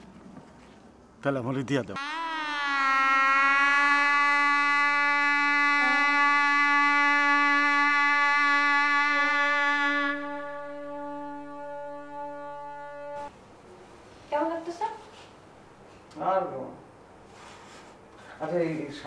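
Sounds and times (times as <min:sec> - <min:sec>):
sustained synthesizer chord: 0:04.0 - 0:13.3.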